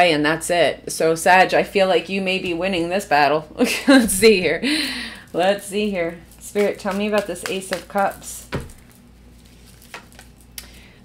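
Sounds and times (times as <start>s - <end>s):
faint low hum: 3.7s - 6.4s.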